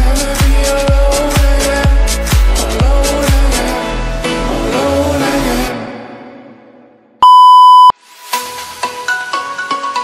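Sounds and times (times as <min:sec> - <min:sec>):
loud electronic timer beep: 0:07.2 - 0:07.9.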